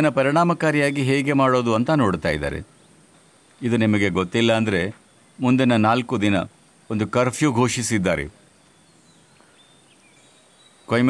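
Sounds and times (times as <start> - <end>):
man speaking: 0.0 - 2.7, 3.6 - 8.4
outdoor background: 0.0 - 11.0
faint high bird chirps: 6.9 - 11.0.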